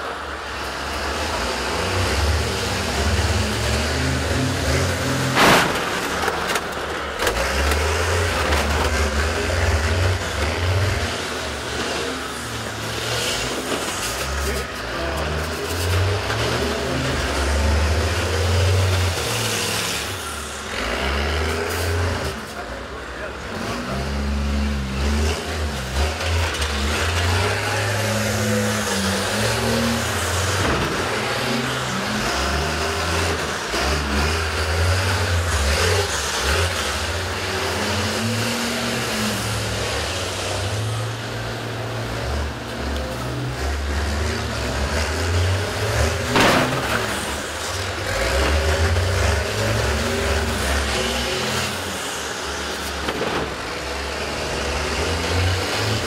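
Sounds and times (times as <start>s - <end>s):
bus engines revving: 0.0s - 56.0s.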